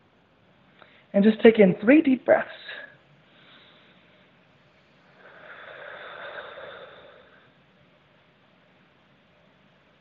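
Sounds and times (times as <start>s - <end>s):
person breathing deeply: 4.9s - 7.6s.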